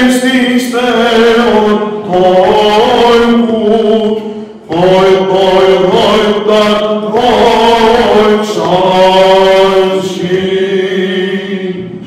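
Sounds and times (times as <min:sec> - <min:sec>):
men singing a chant: 0:00.0 - 0:12.0.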